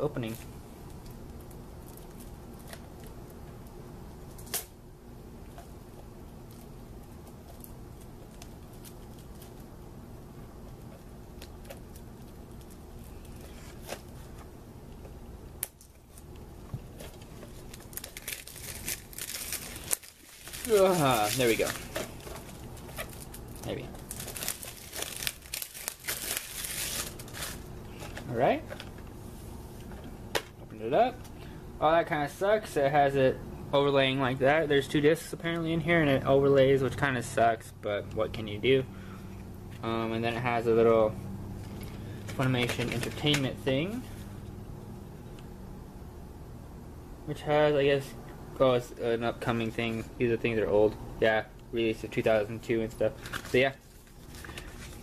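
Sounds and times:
low steady room hum: 0.0s - 55.0s
plastic wrap crinkling: 6.4s - 9.7s, 15.6s - 28.9s, 52.9s - 55.0s.

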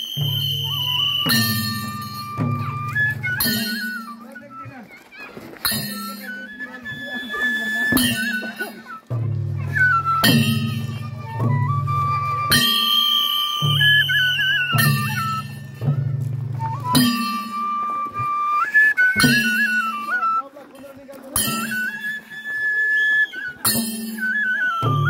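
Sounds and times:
drum beat: 0.0s - 4.8s, 5.5s - 18.5s, 19.1s - 20.2s, 23.6s - 25.0s
flute playing folk melody: 0.0s - 25.0s.

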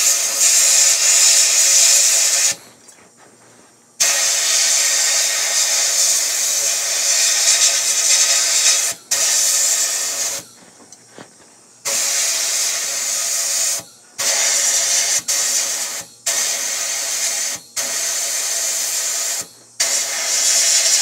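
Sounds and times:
sandblast gun hissing: 0.0s - 21.0s.

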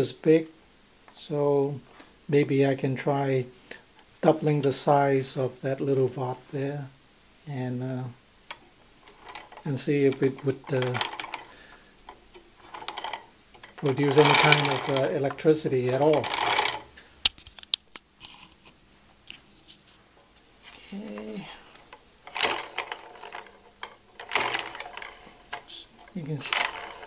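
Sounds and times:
rotor rattling: 8.4s - 17.0s, 20.8s - 27.0s
rotor ticking rapidly: 12.6s - 16.9s, 22.3s - 27.0s.

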